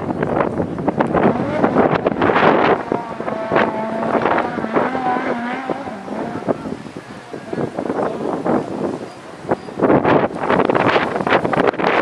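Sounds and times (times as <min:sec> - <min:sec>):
buggy engine running hard: 0:00.0 - 0:09.0
wind on microphone: 0:00.0 - 0:12.0.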